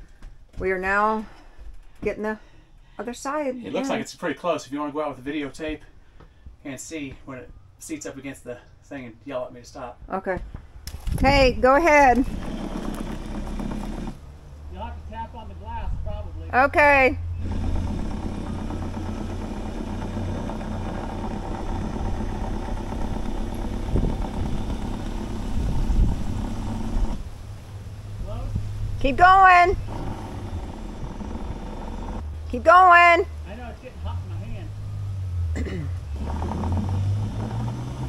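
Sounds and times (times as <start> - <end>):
distant voice calling out: 3.7 - 4.1
electric drill running: 12.1 - 14.2, 17.4 - 27.2, 29.8 - 32.2.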